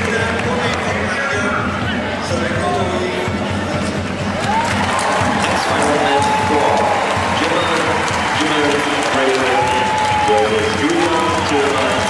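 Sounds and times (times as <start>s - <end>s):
crowd clapping and cheering: 0.0s - 12.0s.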